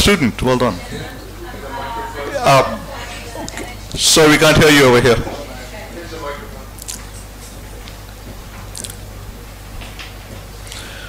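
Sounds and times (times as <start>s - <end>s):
sound system hum: 0.0s - 11.0s.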